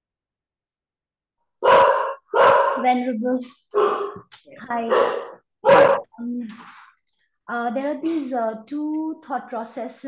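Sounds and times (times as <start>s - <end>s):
dog barking: 1.6s - 2.9s, 3.7s - 4.2s, 4.8s - 6.1s.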